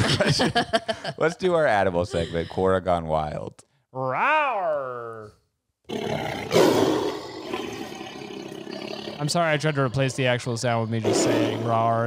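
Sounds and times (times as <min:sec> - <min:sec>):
animal roar sound effect: 0:05.9 - 0:12.0.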